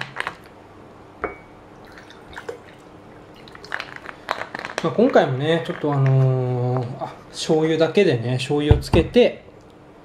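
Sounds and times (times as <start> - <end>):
water pouring into a glass: 1.8 - 4.1.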